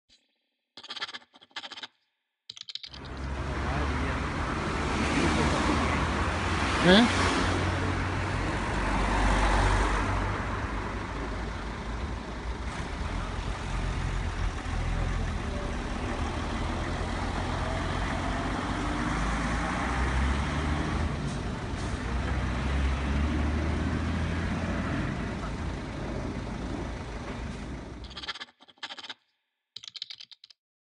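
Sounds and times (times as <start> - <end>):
vehicles passing close by: 3.0 - 28.1.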